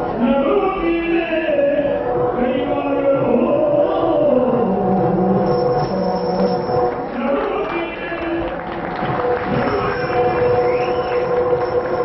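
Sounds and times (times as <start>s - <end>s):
man singing chant-like: 0.1s - 5.5s, 7.1s - 8.6s.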